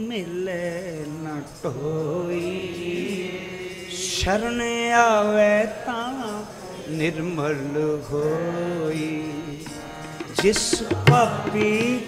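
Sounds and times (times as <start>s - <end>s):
sung chant holding a long note: 0.0s - 12.0s.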